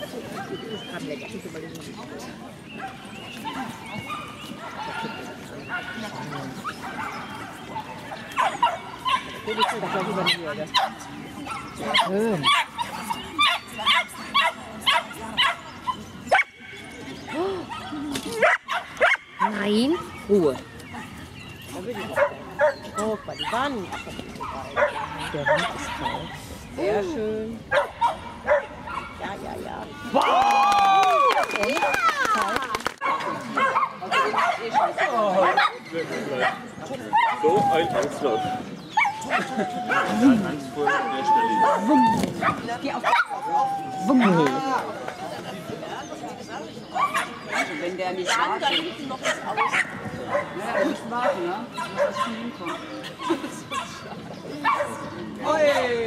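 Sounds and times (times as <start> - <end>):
dog barking: 8.4 - 15.6, 17.7 - 20.1, 22.2 - 24.0, 24.7 - 26.4, 27.7 - 29.3, 33.0 - 35.8, 47.0 - 52.9, 54.6 - 55.0.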